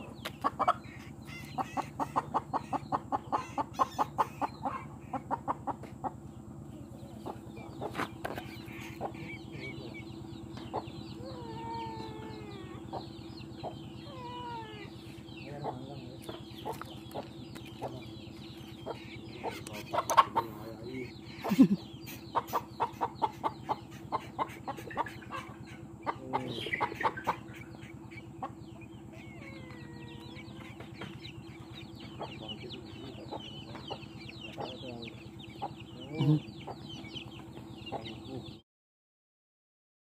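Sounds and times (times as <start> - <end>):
chickens clucking: 0.0 - 38.6
steady low hum: 0.0 - 38.6.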